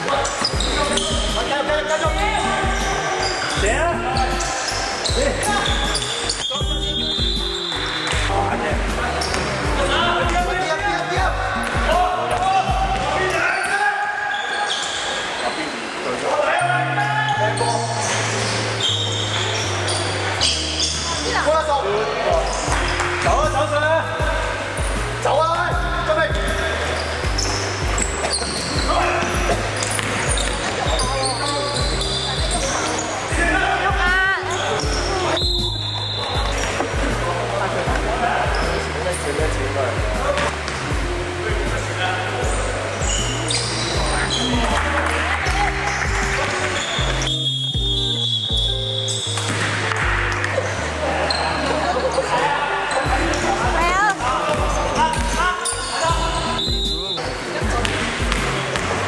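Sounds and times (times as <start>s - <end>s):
background music with bass line: 0.0s - 13.5s, 16.5s - 59.0s.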